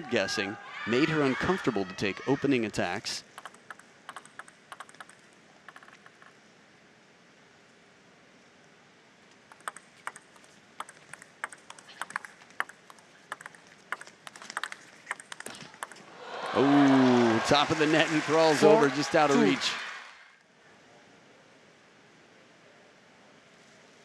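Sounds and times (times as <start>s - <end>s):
table tennis ball hits: 3.4s - 5.9s, 9.5s - 16.0s.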